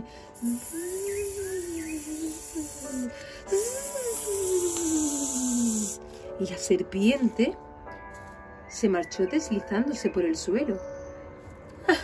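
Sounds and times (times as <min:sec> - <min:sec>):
snake hissing: 0:00.0 - 0:06.4
soft music with sliding tone: 0:00.0 - 0:12.0.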